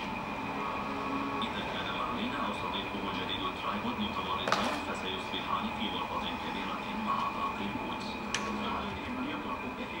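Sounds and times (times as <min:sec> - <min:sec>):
potter's wheel machinery hum: 0:00.0 - 0:10.0
faint voices: 0:00.1 - 0:10.0.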